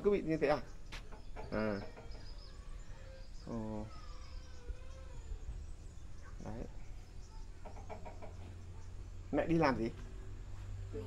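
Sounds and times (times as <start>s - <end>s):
distant birds calling: 0.0s - 11.0s.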